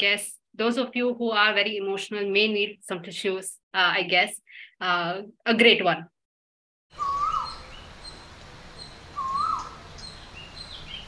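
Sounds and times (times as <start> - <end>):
faint high bird chirps: 6.9 - 11.0
background hiss: 7.0 - 11.0
bird call: 7.0 - 11.0.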